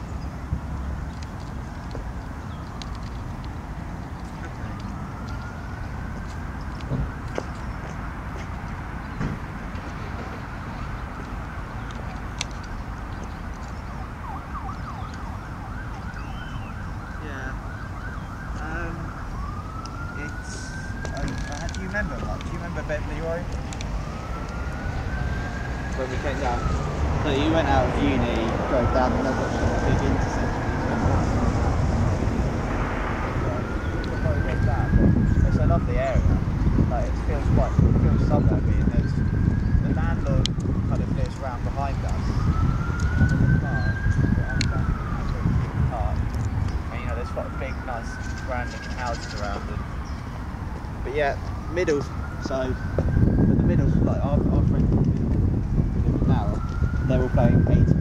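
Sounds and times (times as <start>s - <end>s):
distant traffic: 0.0s - 58.0s
emergency vehicle siren: 0.0s - 58.0s
wind rumble on microphone: 0.0s - 58.0s.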